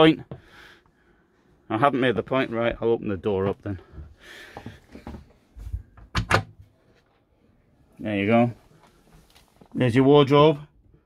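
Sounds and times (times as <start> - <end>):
soft rustling and handling noise: 6.7 - 10.3.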